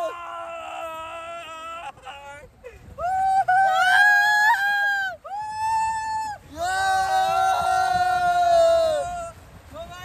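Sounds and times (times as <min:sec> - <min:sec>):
young men yelling: 0:06.4 - 0:09.4.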